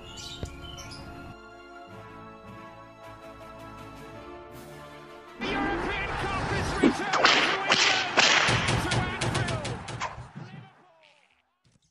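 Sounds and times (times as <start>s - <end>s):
whip-like cracks: 7.0s - 9.0s.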